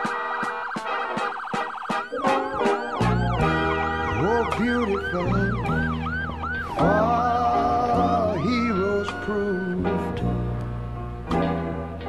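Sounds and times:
emergency siren yelping: 0.0 - 10.2
music: 0.0 - 12.0.

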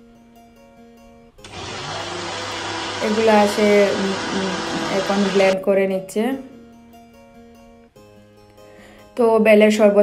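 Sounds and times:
blender running: 1.4 - 5.6.

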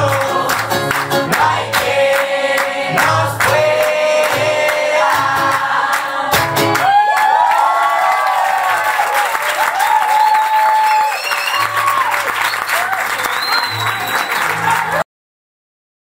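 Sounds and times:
acoustic guitar playing softly: 0.0 - 6.8
audience applauding and cheering: 0.0 - 15.1
shouts and whoops: 6.8 - 15.0.

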